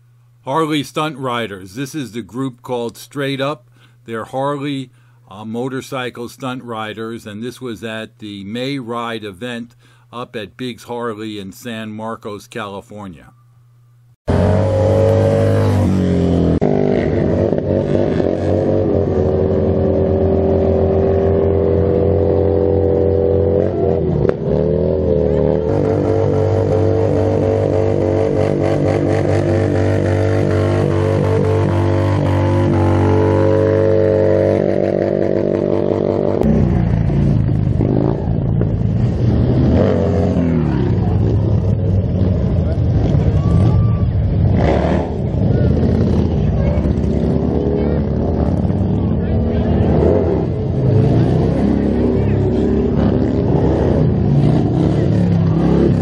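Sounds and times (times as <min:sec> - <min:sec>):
motorcycle engine revving: 0:14.3 - 0:56.0.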